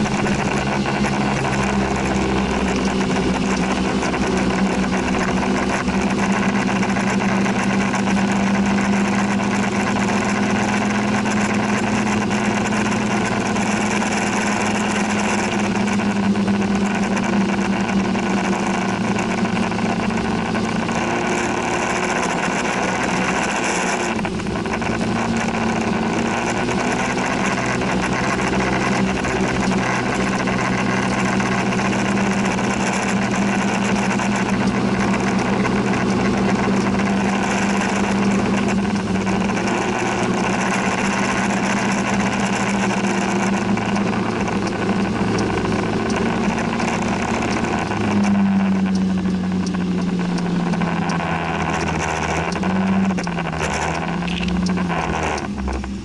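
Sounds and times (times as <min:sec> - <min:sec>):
scooter engine humming: 0:00.0 - 0:56.0
wind and road noise: 0:00.0 - 0:56.0.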